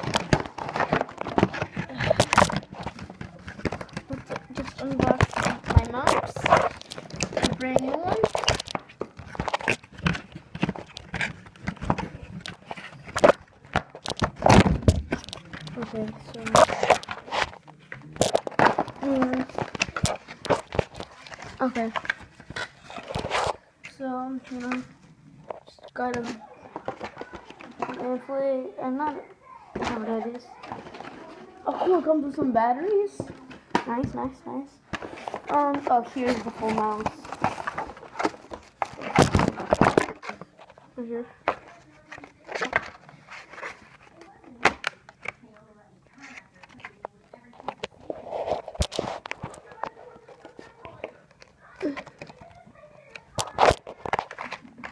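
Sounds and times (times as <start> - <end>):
packaging rustling: 0.0 - 28.2, 33.1 - 54.9.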